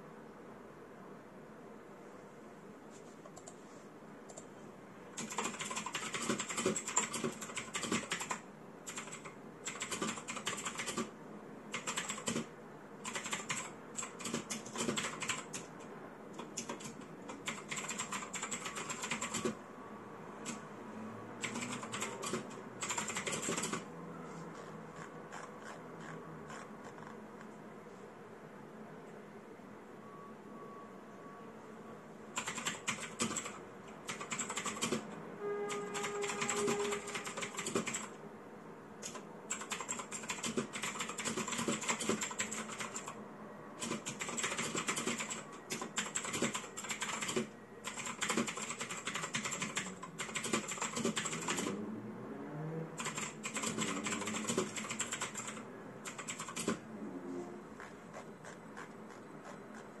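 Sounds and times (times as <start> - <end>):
mechanical keyboard typing: 5.2 - 11.1, 11.7 - 19.6, 21.4 - 23.9, 32.4 - 35.1, 35.7 - 38.2, 39.0 - 43.2, 43.8 - 51.8, 53.0 - 56.8.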